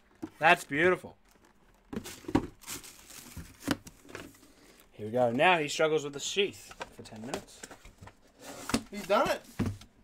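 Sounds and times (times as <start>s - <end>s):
plastic packaging crinkling: 1.2s - 4.4s.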